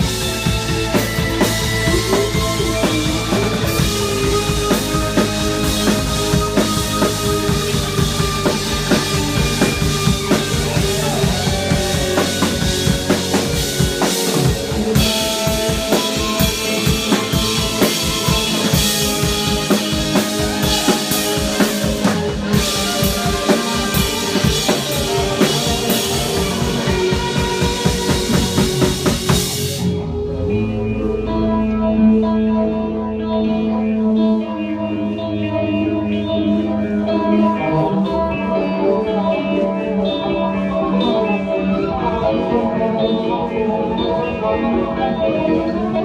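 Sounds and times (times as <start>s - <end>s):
drum kit beat: 0.0s - 30.0s
electric guitars: 0.0s - 46.0s
rock band playing: 0.0s - 46.0s.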